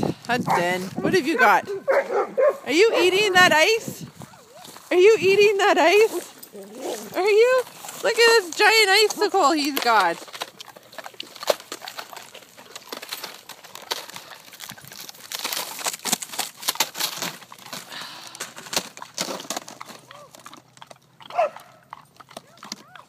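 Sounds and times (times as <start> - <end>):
dog crunching icicle: 5.3 - 23.0.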